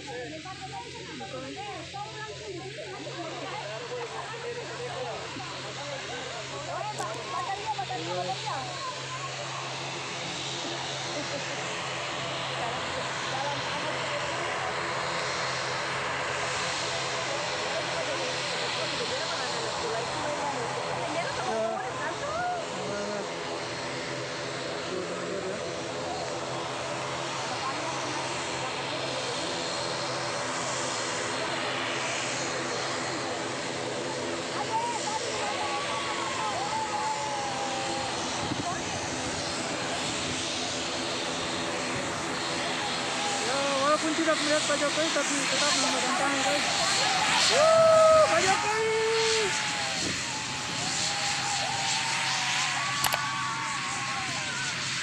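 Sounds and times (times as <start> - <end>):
airliner engines droning: 0.0 - 55.0
crowd chattering: 0.0 - 55.0.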